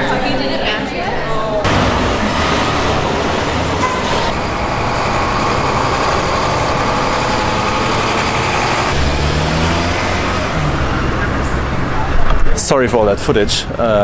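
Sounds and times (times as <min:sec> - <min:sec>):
cars and trucks passing: 0:01.6 - 0:14.0
deeper engine note: 0:01.6 - 0:14.0.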